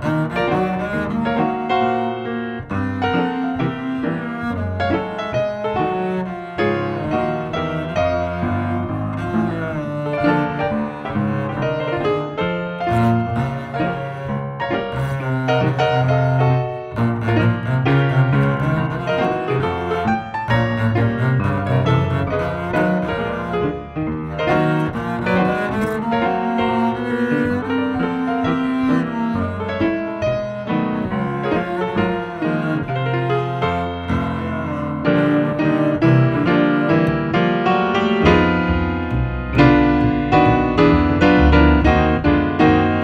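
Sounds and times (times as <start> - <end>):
bowed double bass: 0.0 - 43.0
piano accompaniment: 0.0 - 43.0.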